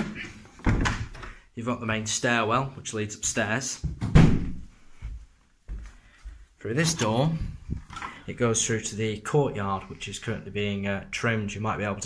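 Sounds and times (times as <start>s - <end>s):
wooden door thudding shut: 0.6s - 1.2s, 3.8s - 4.6s.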